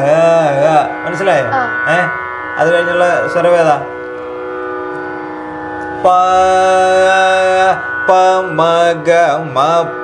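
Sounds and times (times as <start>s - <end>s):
steady drone tone: 0.0s - 10.0s.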